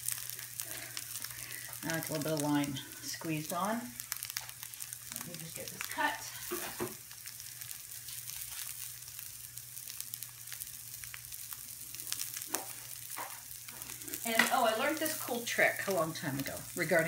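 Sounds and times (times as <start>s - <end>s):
schnitzel sizzling in a pan: 0.0s - 17.0s.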